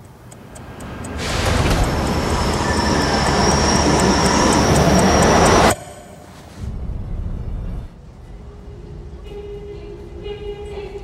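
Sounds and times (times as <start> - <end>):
subway train rushing rumble: 0.6 - 11.0.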